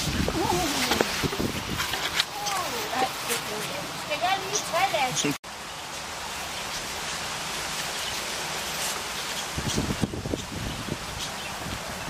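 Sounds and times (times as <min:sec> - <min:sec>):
wind gusts buffeting microphone: 0:00.0 - 0:05.1, 0:09.4 - 0:12.0
wind rustling hiss: 0:00.0 - 0:12.0.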